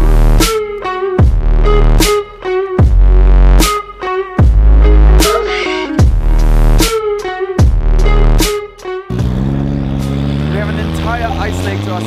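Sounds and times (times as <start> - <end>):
dubstep music with heavy bass: 0.0 - 12.0
car engine running: 9.1 - 12.0.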